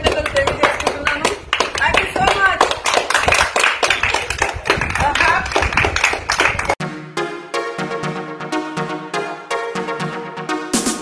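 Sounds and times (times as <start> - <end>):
group of people clapping: 0.0 - 6.8.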